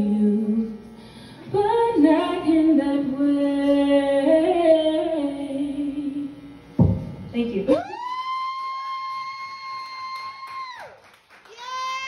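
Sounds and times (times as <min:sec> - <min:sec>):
a cappella singing: 0:00.0 - 0:00.8, 0:01.5 - 0:06.4.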